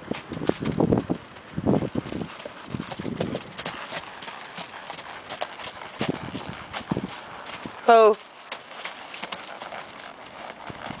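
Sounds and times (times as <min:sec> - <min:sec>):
horse hoofbeats on gravel: 0:00.0 - 0:11.0.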